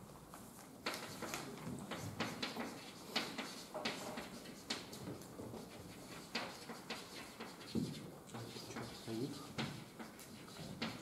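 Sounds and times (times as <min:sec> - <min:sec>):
chalk tapping and scratching: 0:00.8 - 0:11.0.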